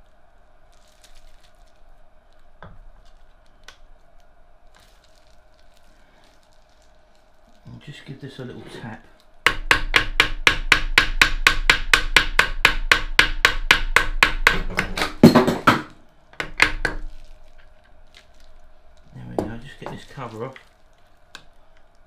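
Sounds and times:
hammer tapping on metal: 9.5s - 17.0s.

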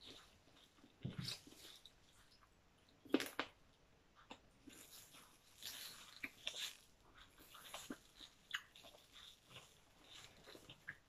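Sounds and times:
person chewing: 0.0s - 3.5s, 4.1s - 11.0s
small wet clicks and crunches: 4.2s - 11.0s.

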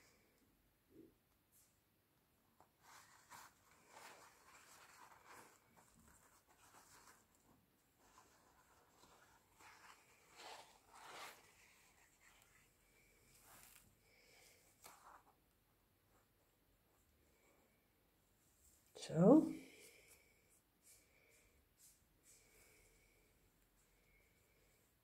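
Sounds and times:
paper napkin rustling: 2.7s - 15.4s.

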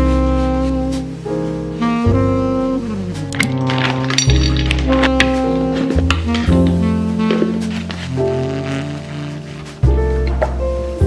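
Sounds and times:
jazzy instrumental music: 0.0s - 11.0s.

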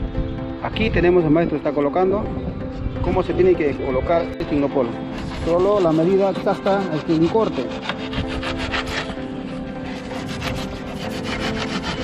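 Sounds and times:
blade sawing polystyrene: 5.1s - 12.0s.

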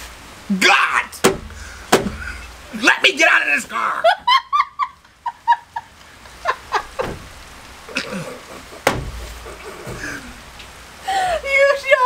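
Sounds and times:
woman laughing quietly: 4.0s - 11.5s.

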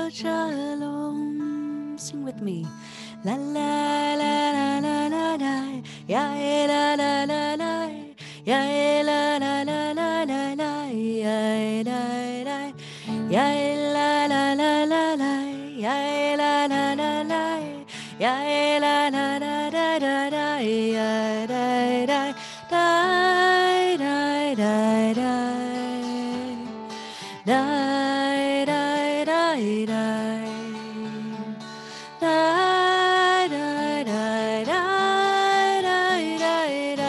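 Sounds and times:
acoustic guitar: 0.0s - 37.0s
woman singing slow melody: 0.0s - 37.0s.

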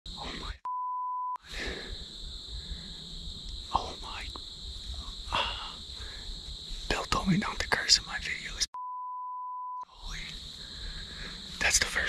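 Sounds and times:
censor bleep: 0.6s - 1.4s, 8.8s - 9.9s.

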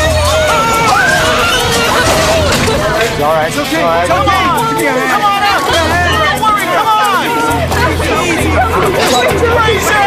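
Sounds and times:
pulsing low bass: 0.0s - 9.9s
background music: 0.0s - 10.0s
voices talking and calling: 0.0s - 10.0s.

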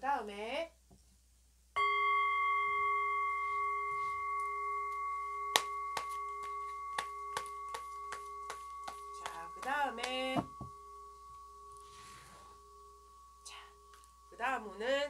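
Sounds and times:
bell ringing: 1.8s - 15.0s.

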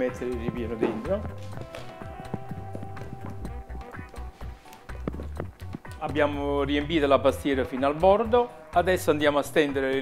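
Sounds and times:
background music with bass line: 0.0s - 10.0s.

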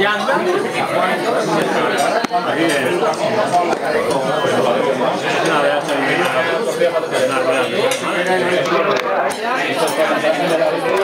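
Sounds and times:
overlapping conversation chatter: 0.0s - 11.0s.

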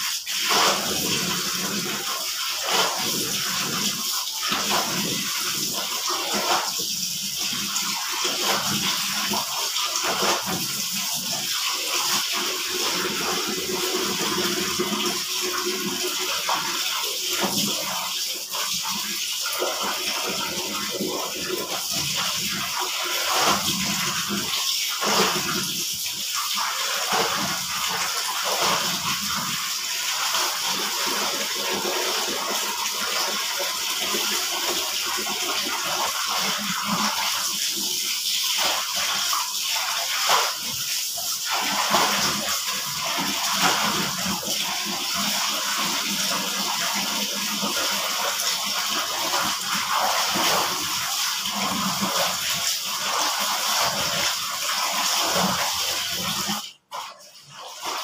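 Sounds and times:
clothes scrubbed in water: 0.0s - 18.8s, 19.4s - 58.0s
water splashing into basin: 0.0s - 58.0s.

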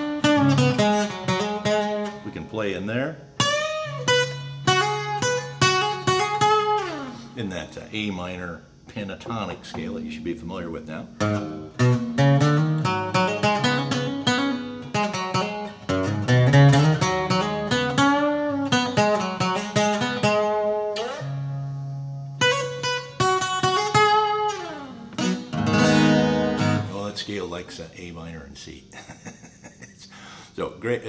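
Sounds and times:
acoustic guitar lead lines: 0.0s - 31.0s.

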